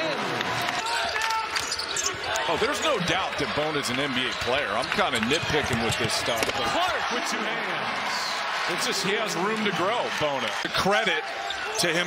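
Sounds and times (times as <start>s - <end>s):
basketball bouncing: 5.2s - 6.6s.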